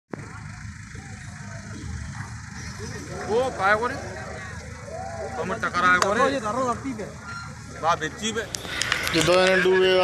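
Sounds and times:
faint voices: 0.1 - 10.0
motor boat engine rumble: 0.1 - 10.0.

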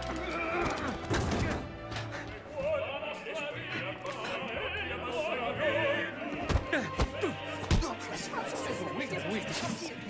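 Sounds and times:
orchestral action music: 5.0 - 10.0.

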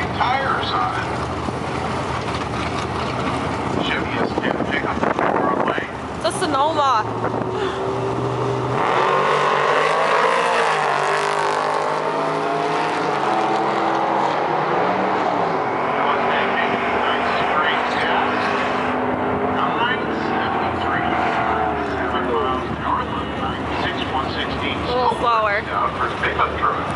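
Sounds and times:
pickup truck engine revving hard: 7.1 - 22.5.

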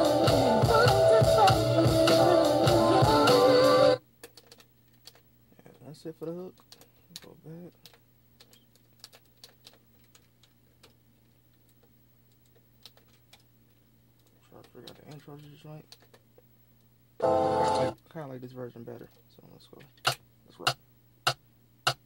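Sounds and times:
beat playback: 0.0 - 4.0
low electrical hum: 0.0 - 22.0.

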